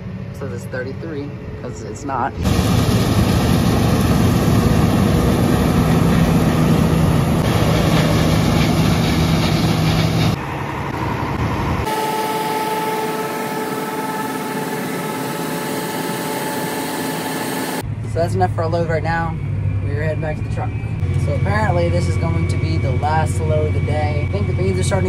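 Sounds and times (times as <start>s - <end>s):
combine harvester running: 0.0s - 25.0s
machine hum with thin whine: 10.4s - 25.0s.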